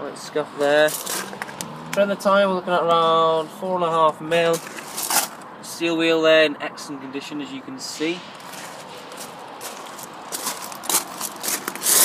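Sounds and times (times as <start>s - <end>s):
footsteps on loose gravel: 4.4s - 5.4s, 8.4s - 12.0s.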